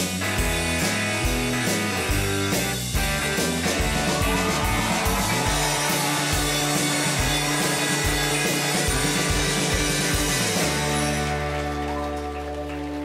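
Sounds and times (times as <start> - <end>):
steady drum beat: 0.0 - 11.5
bass guitar: 0.0 - 13.0
electric guitar: 0.0 - 13.0.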